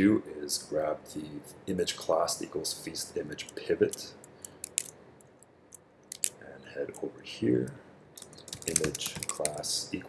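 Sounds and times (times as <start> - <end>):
computer mouse clicks: 5.7 - 7.0.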